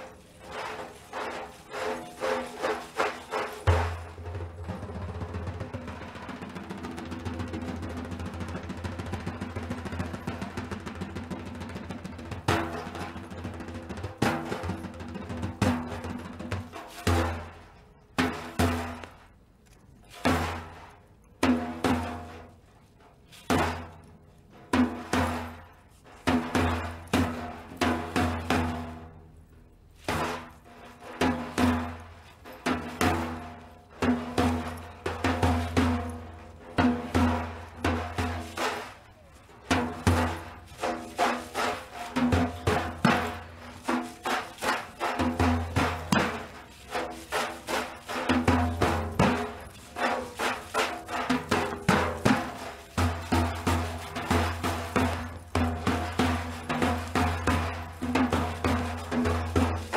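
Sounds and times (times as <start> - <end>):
frame drum booming strokes: 0.0 - 19.4, 23.4 - 59.9.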